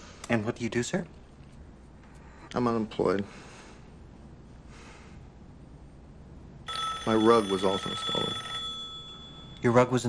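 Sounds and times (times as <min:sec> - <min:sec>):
telephone ringing: 0:06.6 - 0:10.0.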